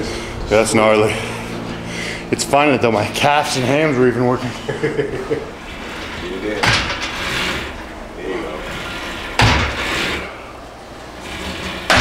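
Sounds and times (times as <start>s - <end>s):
person breathing and grunting: 0.0s - 2.3s
weight stack knocking: 6.5s - 7.5s, 8.9s - 10.2s.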